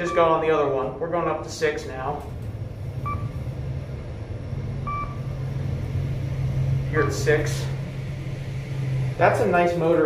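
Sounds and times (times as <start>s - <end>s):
elevator ride hum: 0.0s - 10.0s
short electronic beeps: 3.0s - 3.4s, 4.8s - 5.2s.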